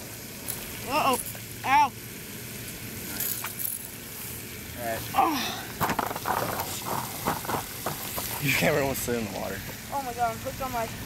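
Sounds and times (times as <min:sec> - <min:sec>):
rustling hiss: 0:00.0 - 0:11.0
sharp knocks: 0:05.8 - 0:08.4.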